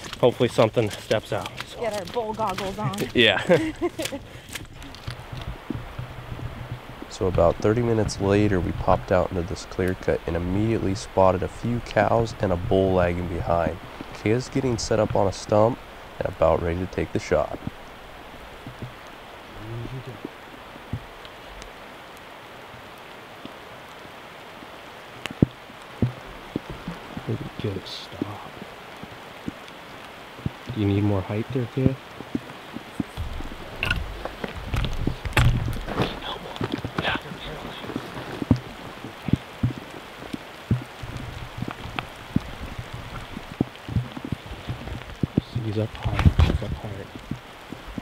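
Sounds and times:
rain pattering: 0.0s - 48.0s
steady background hiss: 0.0s - 48.0s
soft low thumps: 2.2s - 21.7s, 25.2s - 48.0s
low murmur: 4.8s - 21.1s, 30.4s - 48.0s
sharp clicks: 31.8s - 35.9s.

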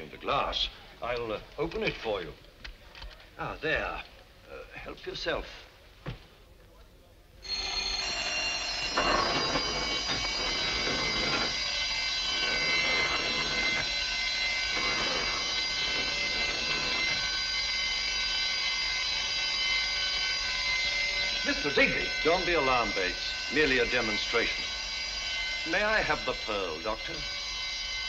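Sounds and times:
alarm bell ringing: 7.4s - 28.0s.

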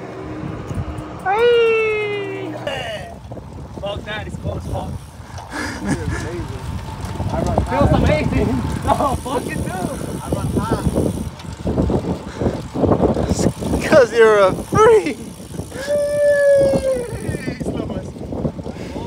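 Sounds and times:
wind rumbling on microphone: 0.0s - 19.0s.

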